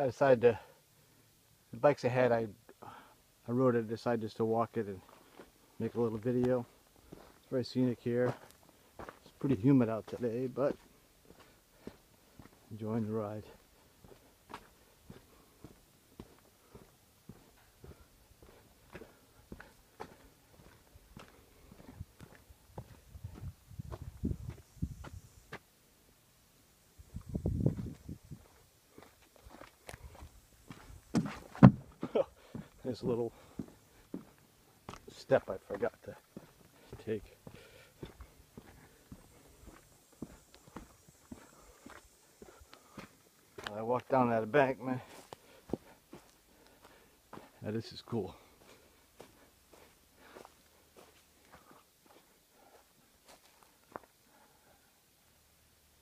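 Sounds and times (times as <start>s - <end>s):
footsteps on concrete: 5.0s - 7.5s, 8.2s - 12.7s, 13.4s - 25.6s, 27.6s - 44.2s, 45.0s - 47.6s, 48.3s - 52.4s, 53.2s - 54.1s.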